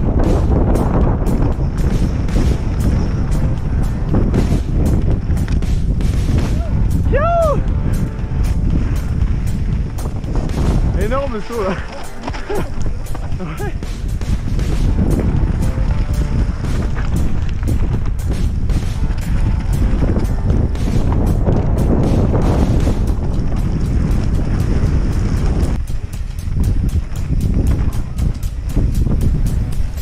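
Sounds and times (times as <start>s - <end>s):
mountain bike rattling on rocks: 0.0s - 7.0s, 8.0s - 30.0s
wind rushing over microphone: 0.0s - 30.0s.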